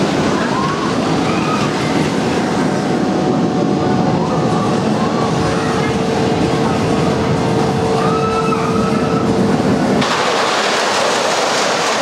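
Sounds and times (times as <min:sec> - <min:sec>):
roller coaster rumble with whine: 0:00.0 - 0:12.0.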